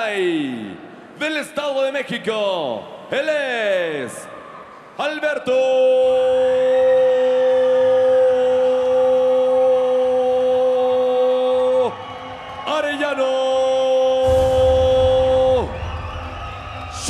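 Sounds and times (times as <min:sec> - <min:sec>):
low rumble: 0:14.3 - 0:17.0.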